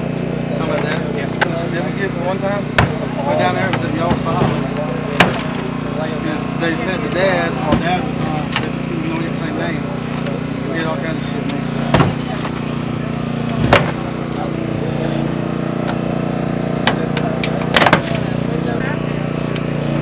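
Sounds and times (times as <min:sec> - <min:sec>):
small engine running: 0:00.0 - 0:20.0
sharp cracks of car door: 0:02.7 - 0:03.1, 0:04.0 - 0:05.7, 0:11.9 - 0:12.6, 0:13.6 - 0:14.2, 0:16.8 - 0:18.3.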